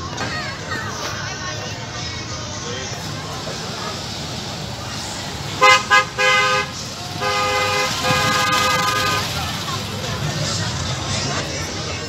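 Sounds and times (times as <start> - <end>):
truck horn honking: 5.5 - 10.1.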